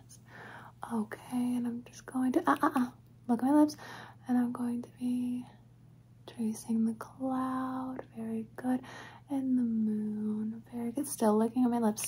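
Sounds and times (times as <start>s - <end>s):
woman speaking softly: 0.8s - 5.6s, 6.2s - 12.0s.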